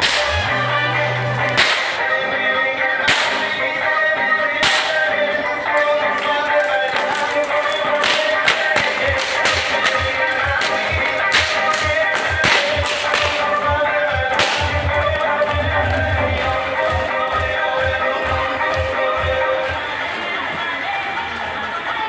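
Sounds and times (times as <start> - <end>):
whip cracking: 0.0 - 0.4, 1.6 - 2.1, 3.0 - 3.6, 4.6 - 5.2, 6.1 - 13.6, 14.3 - 14.9.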